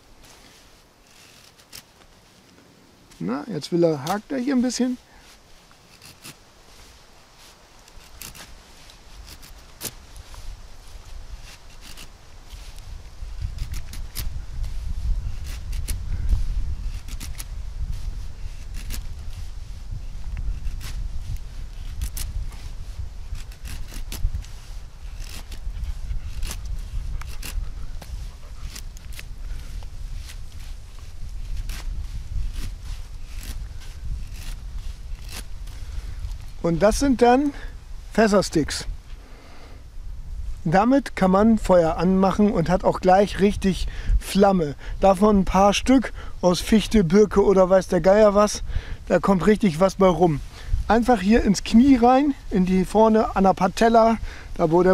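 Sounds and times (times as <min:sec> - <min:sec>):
knife scraping wooden stick: 0:05.7 - 0:06.9, 0:07.5 - 0:19.6, 0:20.2 - 0:36.6.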